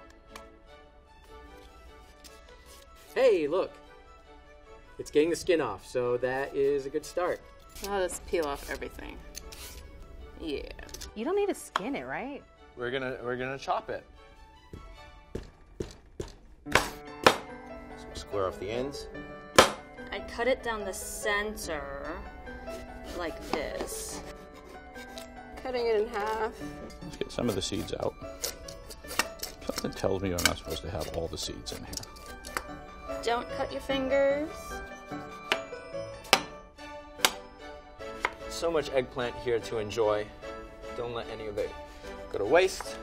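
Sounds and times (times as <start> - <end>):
background music: 0.0 - 43.0
knife chopping on wooden board: 15.3 - 17.5, 19.6 - 19.9, 37.2 - 37.4.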